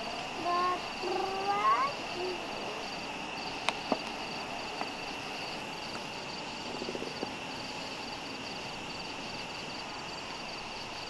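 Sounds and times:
steady high-pitched buzzing: 0.0 - 11.0.

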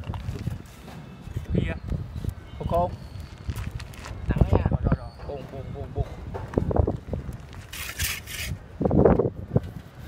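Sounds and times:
trowel scraping wet mortar: 7.6 - 8.6.

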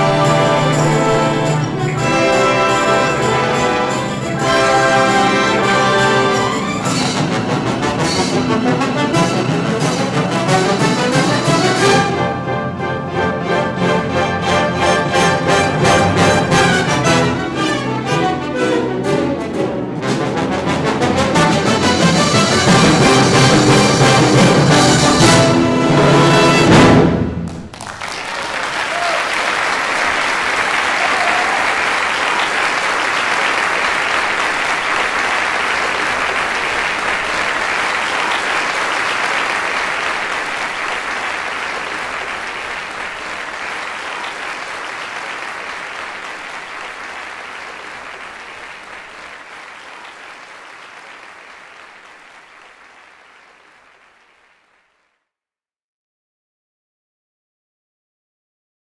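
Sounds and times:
audience applauding: 0.0 - 12.0, 27.4 - 55.1.

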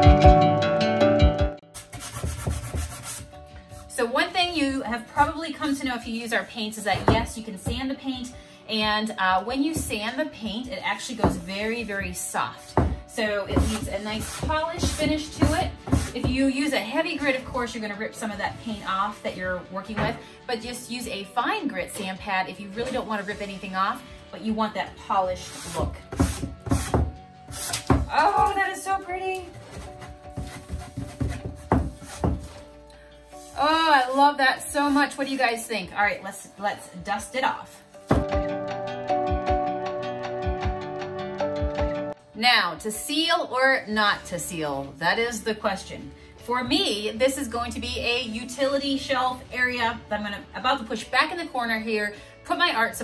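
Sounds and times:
background music: 0.0 - 53.0
sanding block rubbing wood: 1.8 - 3.3, 13.5 - 16.2, 25.4 - 28.0, 29.7 - 32.6.

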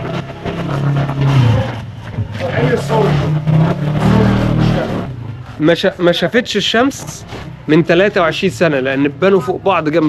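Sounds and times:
voices of passers-by: 0.0 - 10.0.

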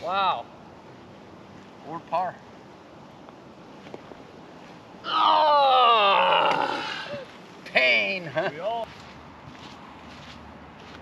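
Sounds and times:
quiet outdoor background: 0.0 - 11.0
person's drawn-out vocal cry: 5.0 - 7.3.

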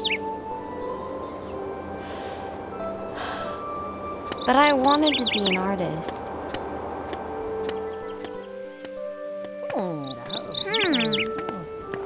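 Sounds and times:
bird-like chirps: 0.0 - 0.2, 4.2 - 9.0, 9.7 - 11.8
soft slow background music: 0.0 - 12.0.

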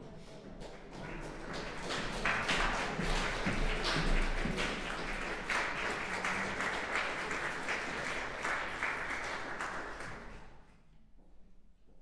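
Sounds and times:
audience applauding: 0.7 - 10.6.

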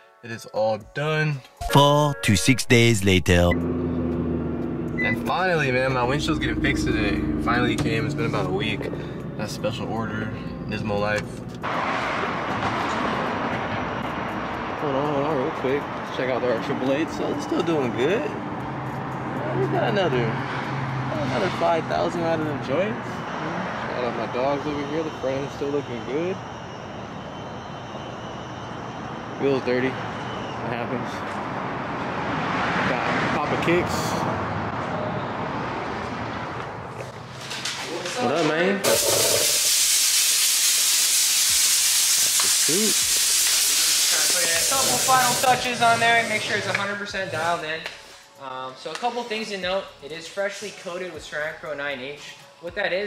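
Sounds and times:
distant traffic: 1.8 - 51.3.

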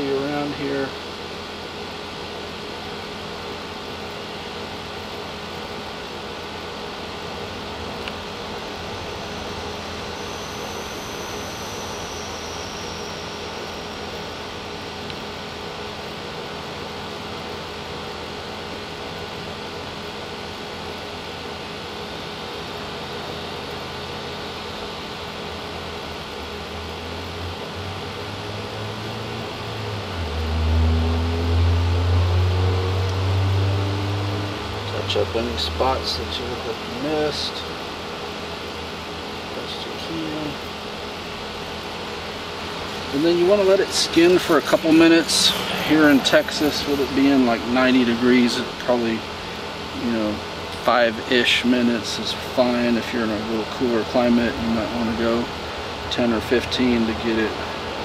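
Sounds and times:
mechanical hum with whirring tones: 0.0 - 58.0.

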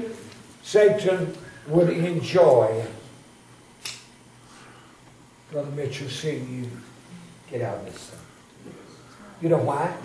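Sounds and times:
sharp click: 3.8 - 4.1.

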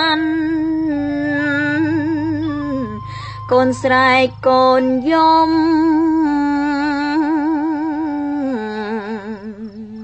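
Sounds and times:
woman chanting with vibrato: 0.0 - 10.0.

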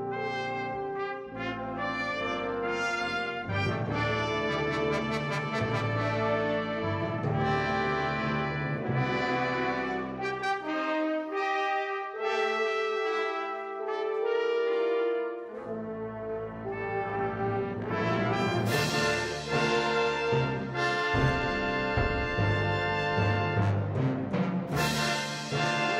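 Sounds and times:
brass fanfare: 0.0 - 25.9
percussion crash: 18.6 - 25.9.

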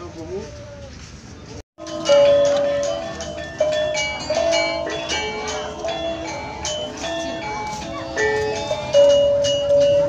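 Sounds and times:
gamelan gongs and metallophones: 1.8 - 10.0.

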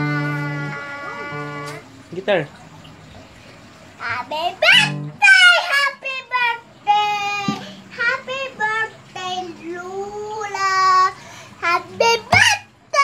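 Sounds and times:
young child singing: 0.0 - 1.8, 4.0 - 13.0.

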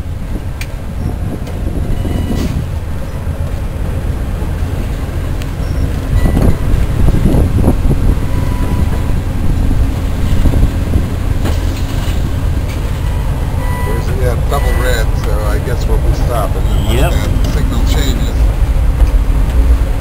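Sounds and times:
train wheels rumbling on track: 0.0 - 20.0.

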